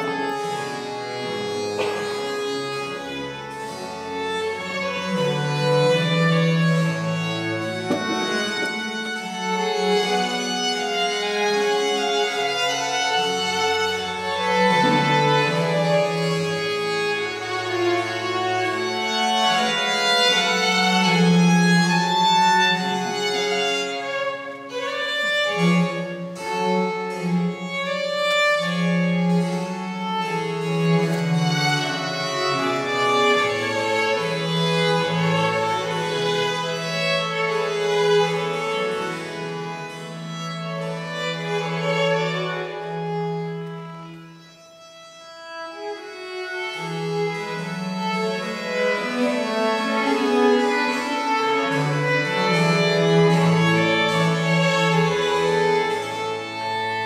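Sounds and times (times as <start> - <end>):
baroque chamber music: 0.0 - 57.0.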